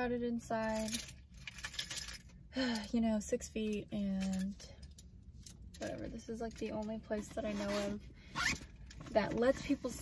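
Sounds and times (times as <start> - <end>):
woman talking: 0.0 - 1.0, 2.6 - 4.8, 5.8 - 8.0, 9.1 - 10.0.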